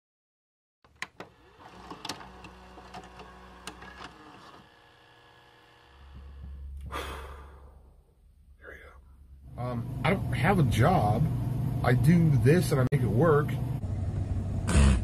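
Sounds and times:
mechanism clicks and clunks: 0.9s - 4.7s
motor hum: 1.0s - 7.9s, 9.2s - 15.0s.

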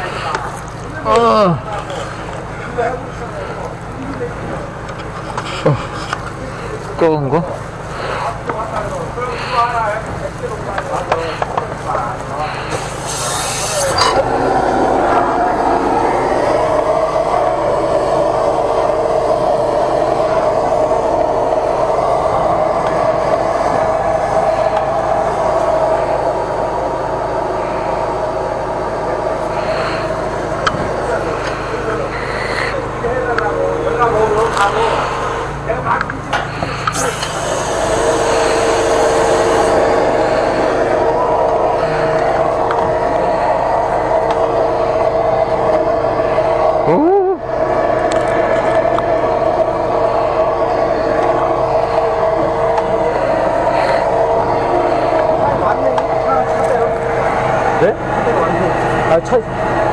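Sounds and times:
drain jetter droning: 0.0s - 59.9s
loud hissing bursts: 7.6s - 33.0s, 36.5s - 48.5s.

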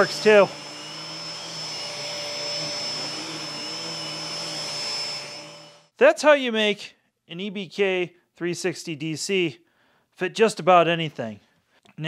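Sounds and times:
vacuum cleaner running: 0.0s - 5.9s.

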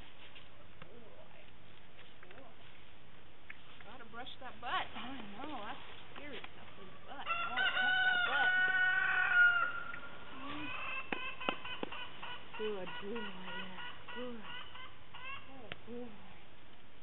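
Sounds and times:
chickens clucking: 6.8s - 15.7s
rooster crowing: 7.2s - 11.1s.

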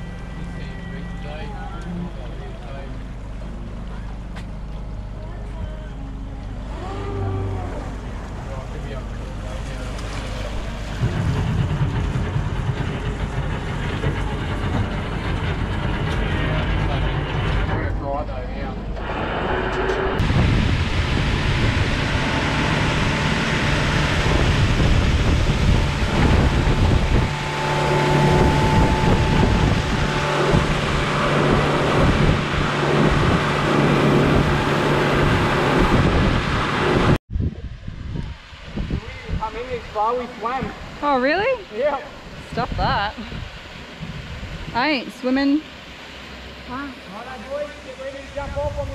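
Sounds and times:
motorboat engine running: 0.0s - 37.2s
water rushing past hull: 2.2s - 17.7s, 19.0s - 48.9s
wind buffeting microphone: 20.2s - 45.6s, 48.3s - 48.9s.

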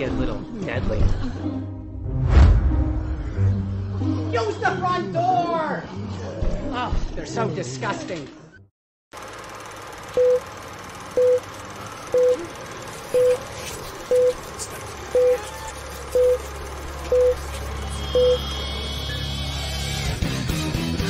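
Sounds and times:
low hum: 1.8s - 4.2s
countdown leader beeps: 10.2s - 10.4s, 11.2s - 11.4s, 12.1s - 12.4s, 13.2s - 13.4s, 15.2s - 15.4s, 16.2s - 16.4s, 17.1s - 17.4s, 18.1s - 18.5s.

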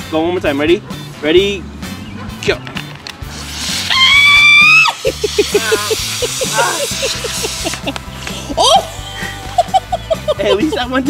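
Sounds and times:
background music with repeated notes: 0.0s - 11.0s
loud high-pitched scream: 3.6s - 5.1s.

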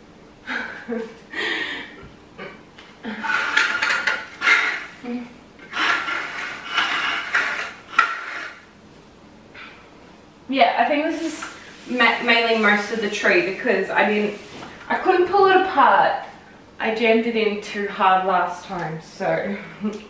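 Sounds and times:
plastic needles rustling: 11.1s - 14.9s.

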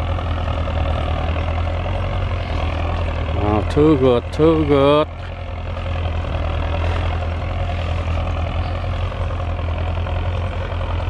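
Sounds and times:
tractor diesel engine humming: 0.0s - 11.0s.

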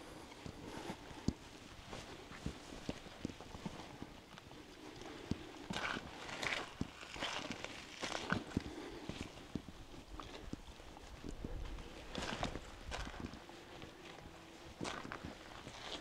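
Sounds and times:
footsteps on rock and gravel: 5.1s - 16.0s.

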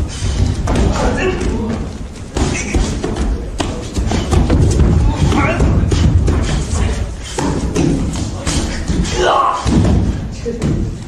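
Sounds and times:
voices: 0.7s - 9.8s.

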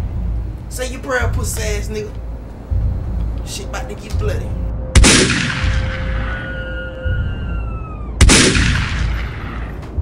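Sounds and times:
background music with low beat: 0.0s - 10.0s
pistol shots: 5.0s - 6.2s, 8.2s - 9.7s
high ringing falling in pitch: 5.7s - 8.2s.

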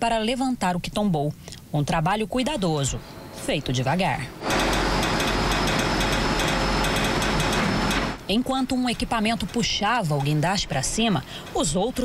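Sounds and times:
diesel crane engine running: 4.2s - 12.0s.

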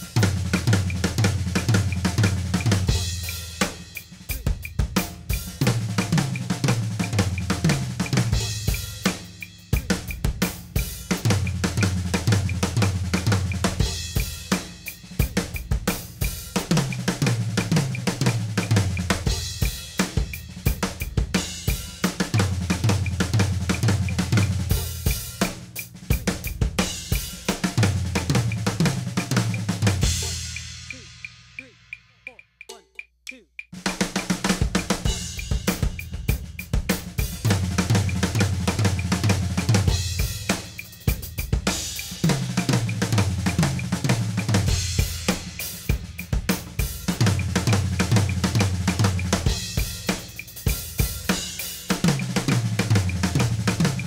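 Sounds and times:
bass drum: 0.0s - 32.4s, 33.7s - 54.0s
cymbals: 0.0s - 32.4s, 33.8s - 54.0s
drum fill on toms and snare: 0.0s - 54.0s.

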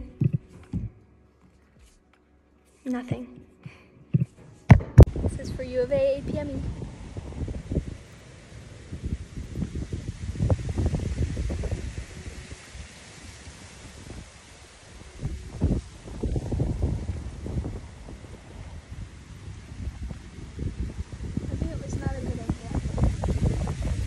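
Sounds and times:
wind buffeting microphone: 0.0s - 1.0s, 4.1s - 24.0s.

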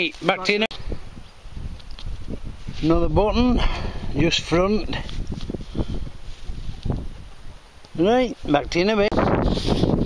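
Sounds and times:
wind rumble on microphone: 0.7s - 10.0s.

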